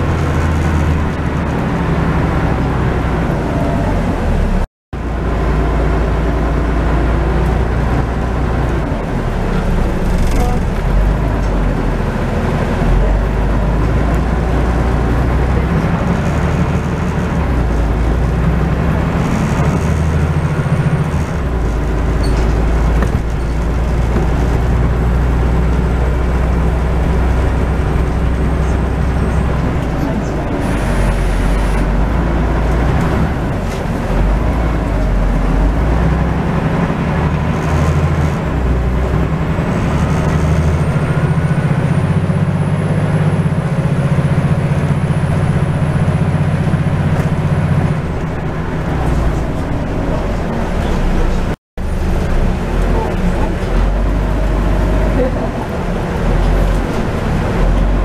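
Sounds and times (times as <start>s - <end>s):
bus diesel engine: 0.0s - 58.0s.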